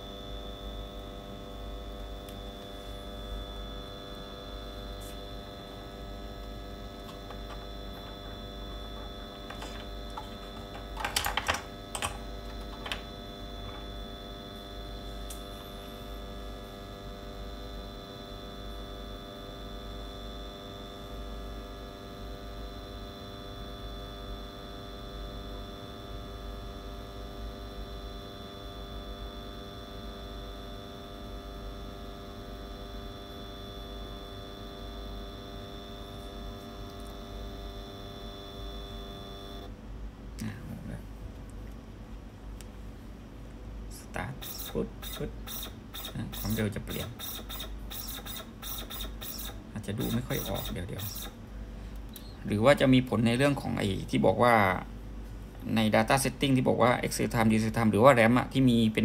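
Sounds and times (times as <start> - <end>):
electrical hum with high whine: 0.0 - 59.0
plastic controller clicks and knocks: 9.5 - 13.0.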